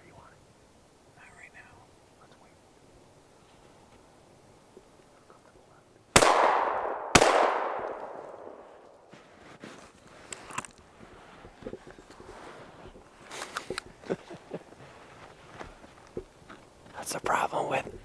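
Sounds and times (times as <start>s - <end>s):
echoing gunshots: 6.1s - 8.9s.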